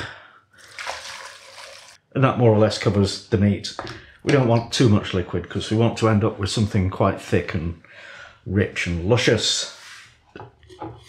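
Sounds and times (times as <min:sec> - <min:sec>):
liquid pouring into a pot: 0:00.6 - 0:02.0.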